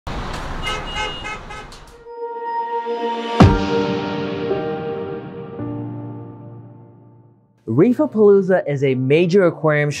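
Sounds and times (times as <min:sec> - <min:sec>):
road traffic noise: 0:00.1 - 0:02.1
car horn short beeps: 0:00.6 - 0:01.8.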